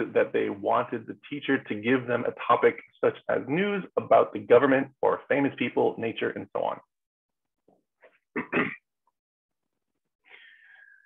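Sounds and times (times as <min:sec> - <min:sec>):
man clearing his throat: 0:08.3 - 0:08.9.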